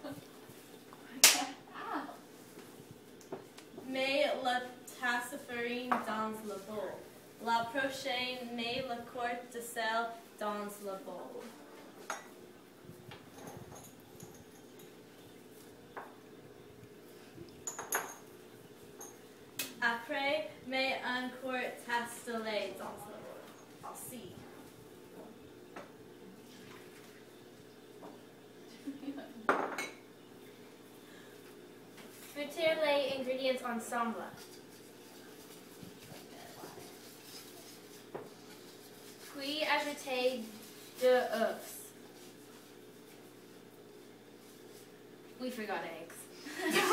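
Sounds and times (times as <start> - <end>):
faint steady hum: 0.0 - 46.9
utensil stirring batter in metal bowl: 34.2 - 43.3.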